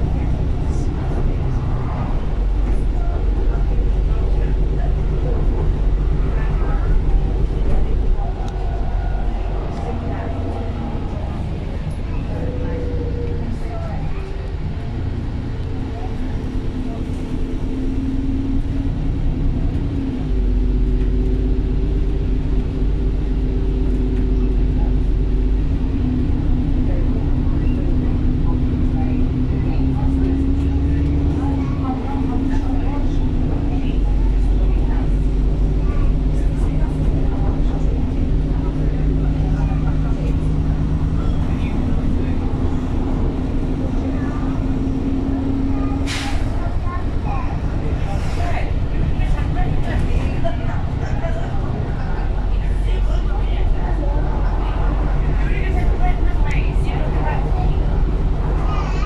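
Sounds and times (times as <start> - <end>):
bus engine droning: 0.0 - 59.0
passengers talking faintly: 0.0 - 59.0.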